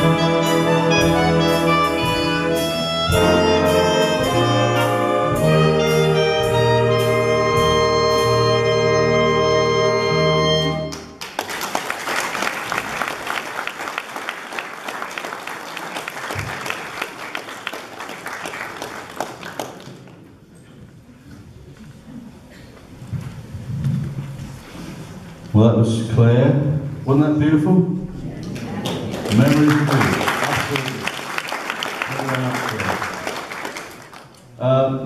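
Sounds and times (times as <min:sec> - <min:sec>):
swing orchestra playing: 0:00.0 - 0:11.2
audience applause: 0:10.9 - 0:20.3, 0:28.5 - 0:34.4.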